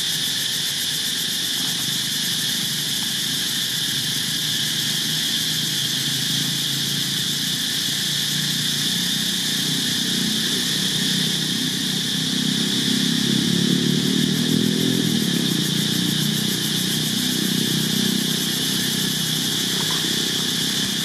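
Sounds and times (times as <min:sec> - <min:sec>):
small engine running: 0:00.0 - 0:21.0.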